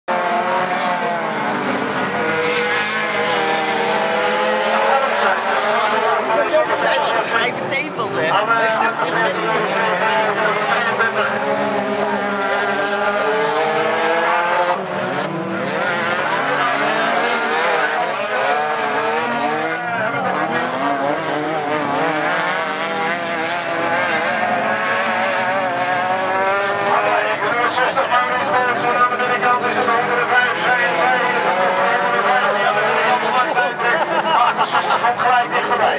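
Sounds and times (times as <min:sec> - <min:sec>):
race car engines revving: 0:00.1 - 0:35.9.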